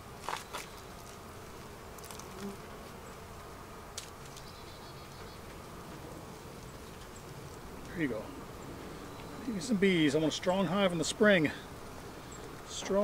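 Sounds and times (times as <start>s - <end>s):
honeybees buzzing: 0.0s - 13.0s.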